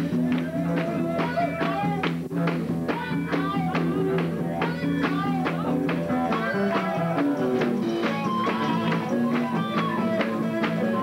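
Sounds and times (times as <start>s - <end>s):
bass: 0.0s - 11.0s
steady driving beat: 0.0s - 11.0s
electric steel guitar melody: 2.3s - 11.0s.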